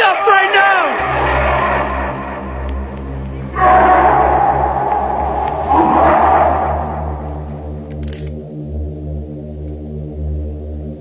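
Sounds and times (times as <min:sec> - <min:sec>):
loud voice calling out: 0:00.0 - 0:01.0
low droning music: 0:00.0 - 0:11.0.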